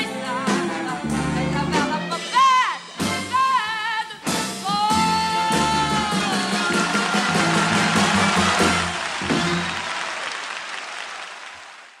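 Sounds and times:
audience applauding: 6.4 - 12.0.

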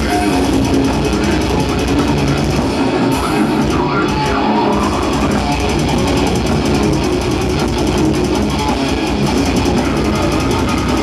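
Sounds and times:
fast drumming: 0.0 - 11.0
heavily distorted guitars and bass: 0.0 - 11.0.

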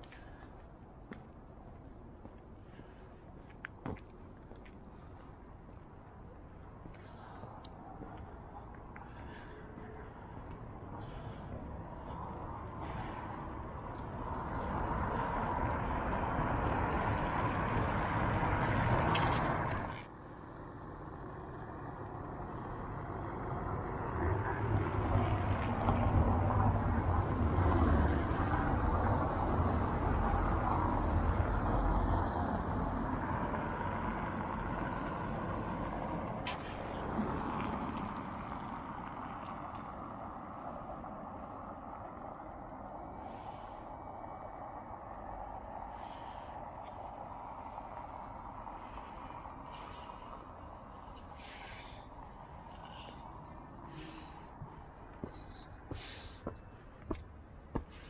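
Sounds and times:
steady traffic noise: 0.0 - 58.0.

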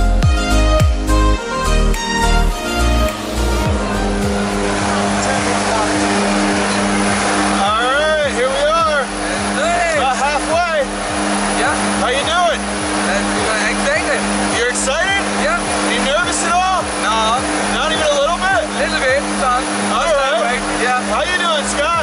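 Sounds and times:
music: 0.0 - 22.0
plane engines droning: 0.1 - 22.0.

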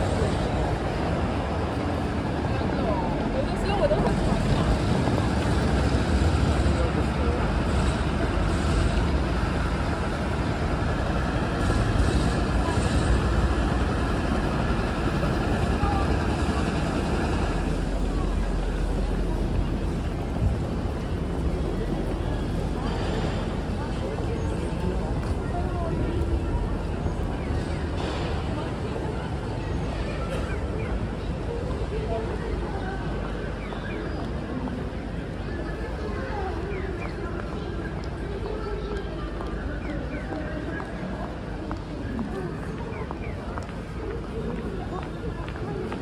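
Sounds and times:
passers-by talking: 0.0 - 46.0.

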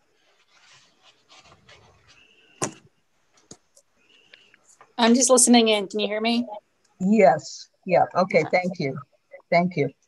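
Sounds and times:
breathing: 4.0 - 4.8.

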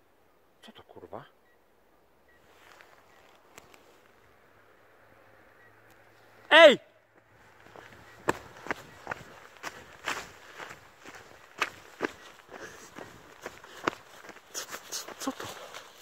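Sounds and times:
brisk footsteps: 7.2 - 16.0.

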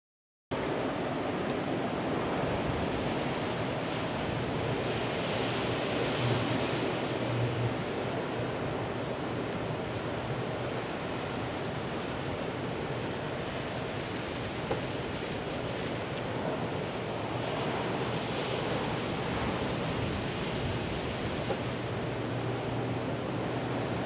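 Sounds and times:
rain on microphone: 0.6 - 24.0
storm wind: 0.6 - 24.0.

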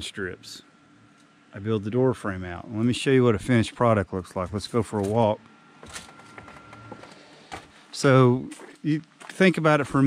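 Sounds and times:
footsteps on gravel: 8.5 - 10.0.

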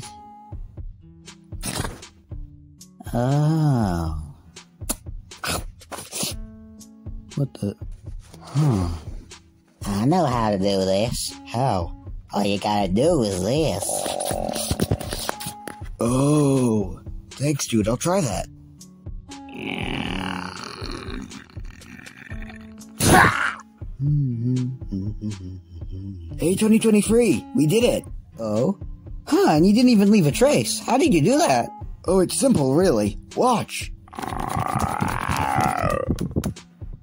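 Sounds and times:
background music: 0.0 - 37.0.

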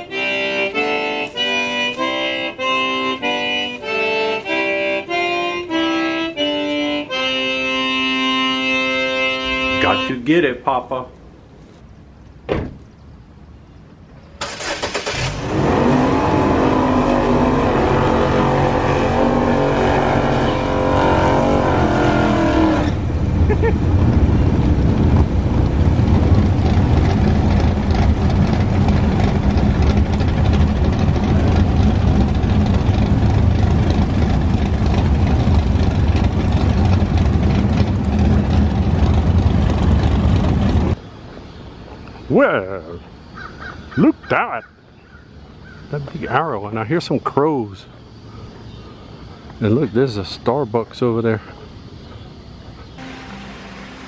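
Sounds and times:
car engine starting and idling: 14.2 - 41.0, 52.9 - 54.0.

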